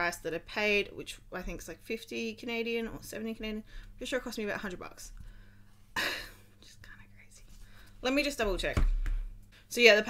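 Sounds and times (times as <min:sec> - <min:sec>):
quiet breathing: 0:03.6 - 0:04.0, 0:05.1 - 0:08.0
woman's breathy laugh: 0:06.0 - 0:06.5.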